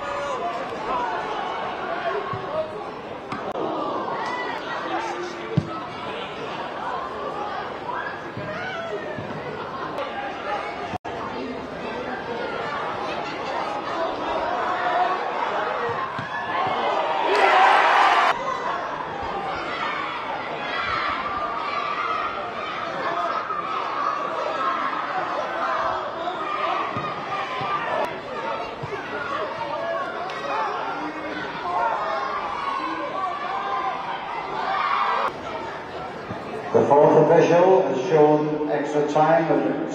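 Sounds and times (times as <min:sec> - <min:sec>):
crowd chatter: 0:00.0 - 0:39.9
football match sound: 0:00.0 - 0:39.9
voices talking and calling out: 0:00.0 - 0:39.9.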